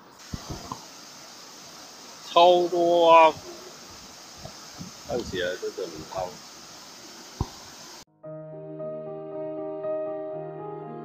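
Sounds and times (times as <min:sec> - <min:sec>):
water spilling over a weir: 0:00.2 - 0:08.0.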